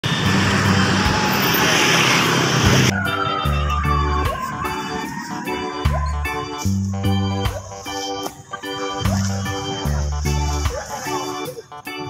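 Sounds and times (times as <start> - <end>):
truck passing close by: 0.0 - 7.3
road noise: 0.0 - 12.0
music with falling glide: 0.2 - 12.0.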